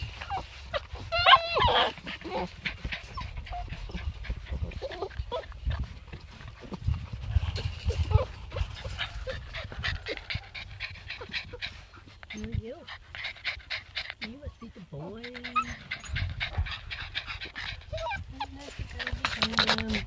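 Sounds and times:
puppies panting: 0:00.0 - 0:20.0.

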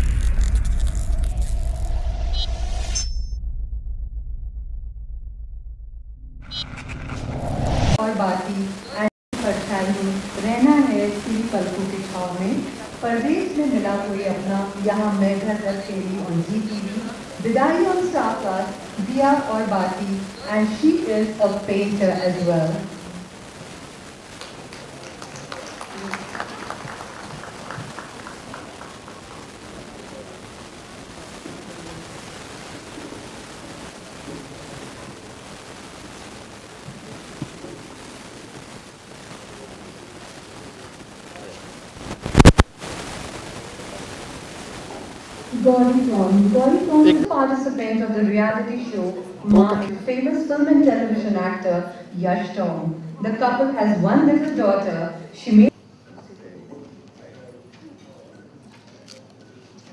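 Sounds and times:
steady hiss: 0:07.4 - 0:57.7
people talking in a hall: 0:08.0 - 0:42.0, 0:42.9 - 0:59.9
audience clapping: 0:24.2 - 0:30.5.

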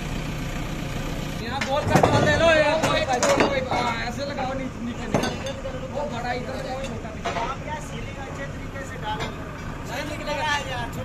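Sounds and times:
diesel engine running: 0:00.0 - 0:11.0
men talking: 0:01.4 - 0:11.0.

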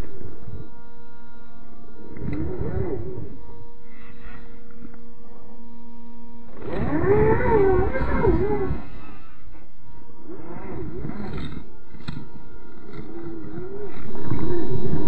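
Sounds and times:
faint steady hum: 0:00.0 - 0:15.0
slowed-down electric motor growl: 0:00.0 - 0:15.0.

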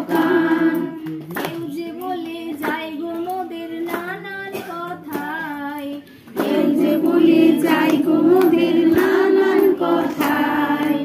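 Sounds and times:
clapped beat: 0:00.0 - 0:11.0
women singing devotional song: 0:00.0 - 0:11.0.

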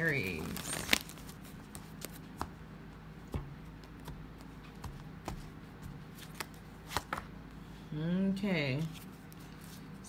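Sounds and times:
cards being shuffled: 0:00.0 - 0:02.6, 0:03.7 - 0:07.3, 0:08.8 - 0:10.0.

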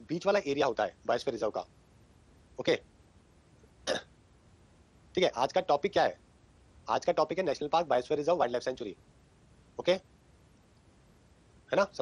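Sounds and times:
man's cough-like throat sound: 0:03.8 - 0:04.1.

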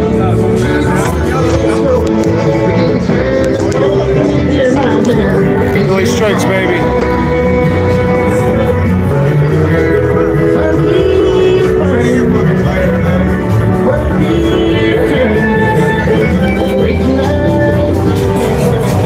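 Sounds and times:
bluegrass music with guitar: 0:00.0 - 0:19.0.

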